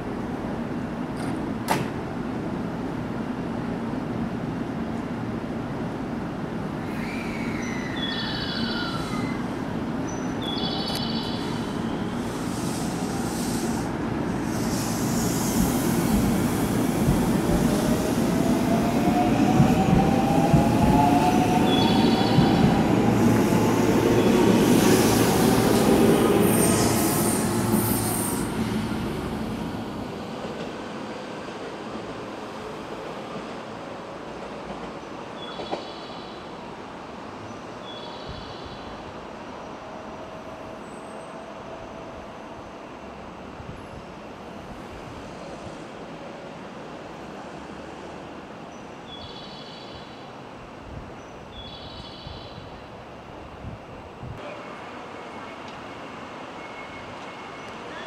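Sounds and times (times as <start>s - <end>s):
train wheels rumbling on track: 0.0s - 8.0s, 8.6s - 37.5s.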